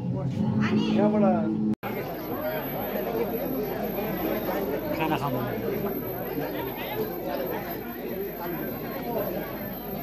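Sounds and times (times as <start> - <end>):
background chatter: 0.0 - 10.0.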